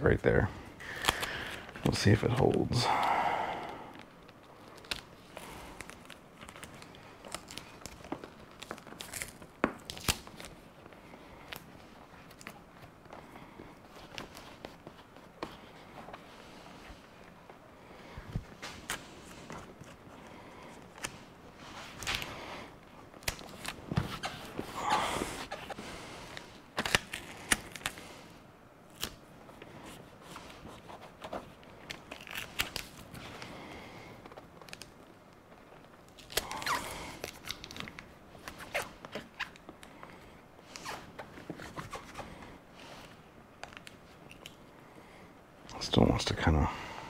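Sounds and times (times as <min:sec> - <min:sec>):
foil tape crinkling: 0:00.8 - 0:02.6, 0:04.0 - 0:13.0, 0:23.0 - 0:44.6.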